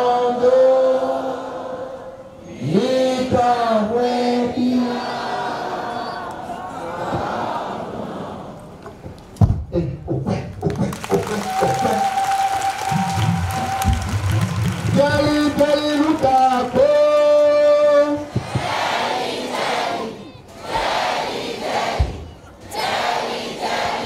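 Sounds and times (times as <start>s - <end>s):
crowd singing and chanting: 0.0s - 8.8s, 18.2s - 24.0s.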